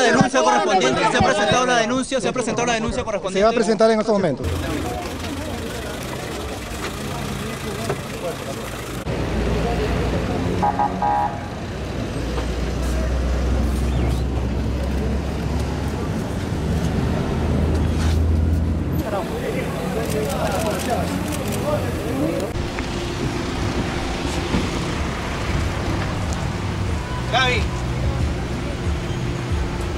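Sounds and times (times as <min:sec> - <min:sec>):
people talking: 0:00.0 - 0:03.5, 0:04.2 - 0:10.8, 0:19.0 - 0:22.6
car running: 0:04.4 - 0:29.9.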